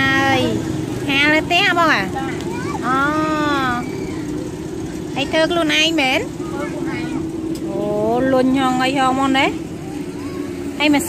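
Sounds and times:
women talking: 0:00.0 - 0:04.0, 0:05.1 - 0:06.4, 0:07.6 - 0:09.7, 0:10.8 - 0:11.0
low motor hum: 0:00.0 - 0:11.0.

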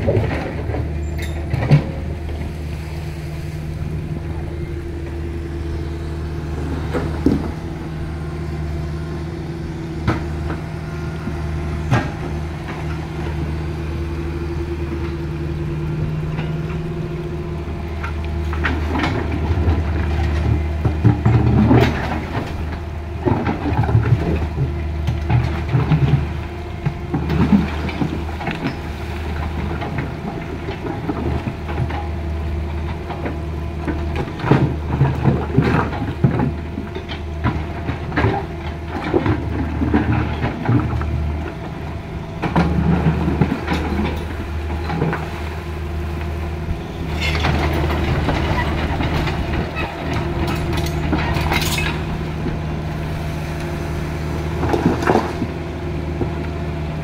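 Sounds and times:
bucket clanking and scraping rocks: 0:00.0 - 0:08.6, 0:18.5 - 0:32.2, 0:32.8 - 0:56.4
excavator diesel engine running: 0:00.0 - 0:57.0.

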